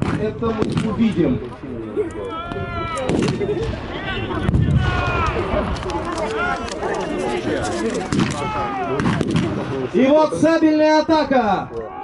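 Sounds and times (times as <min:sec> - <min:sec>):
blank gunshots: 0:00.0 - 0:01.2, 0:08.1 - 0:10.0
people shouting: 0:02.2 - 0:06.6, 0:08.1 - 0:09.2.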